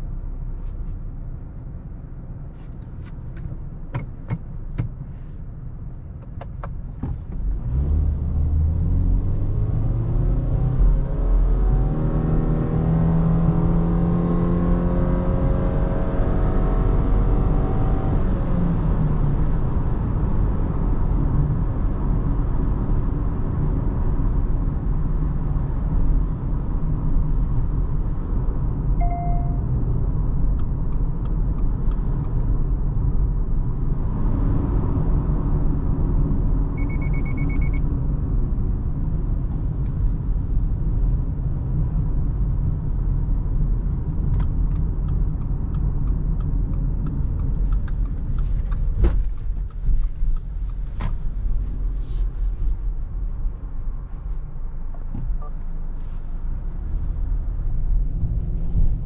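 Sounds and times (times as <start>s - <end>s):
car engine accelerating: 7.3s - 24.1s, 24.9s - 59.0s
electronic chime: 29.0s - 29.7s
pulsing beep: 29.0s - 29.7s, 36.8s - 37.8s.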